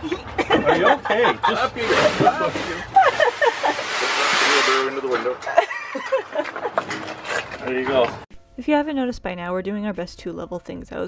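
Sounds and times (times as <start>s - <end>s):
loud steady hiss: 1.8s - 5.1s.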